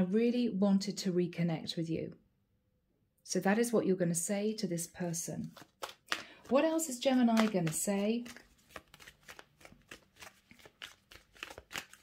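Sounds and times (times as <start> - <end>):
cards being shuffled: 5.4 - 12.0.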